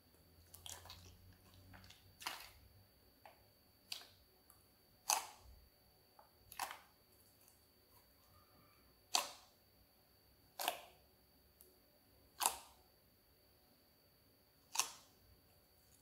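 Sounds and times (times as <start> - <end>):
slime kneaded by hand: 0.3 - 5.6, 6.4 - 9.6, 10.5 - 11.0, 12.3 - 12.8, 14.6 - 15.2.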